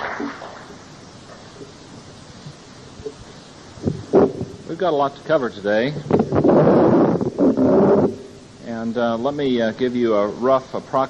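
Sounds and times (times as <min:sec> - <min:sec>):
rushing noise bursts on microphone: 0:00.0 - 0:11.0.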